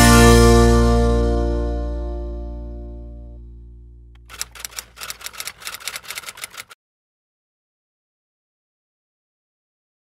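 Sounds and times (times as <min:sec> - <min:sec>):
typewriter clicks: 0:04.2 - 0:06.8.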